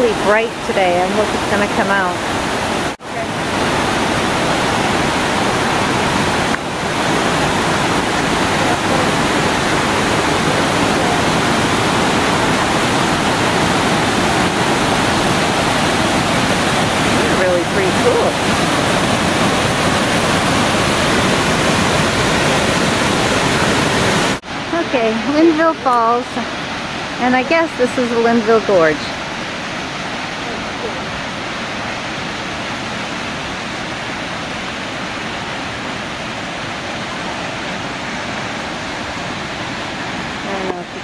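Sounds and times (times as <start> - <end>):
river rapids rushing: 0.0 - 41.0.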